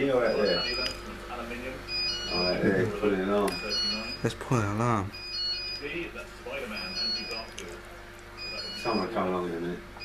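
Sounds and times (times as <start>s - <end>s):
high electronic alarm beeps: 0.0s - 1.0s, 1.9s - 2.8s, 3.5s - 6.1s, 6.7s - 7.5s, 8.4s - 9.2s.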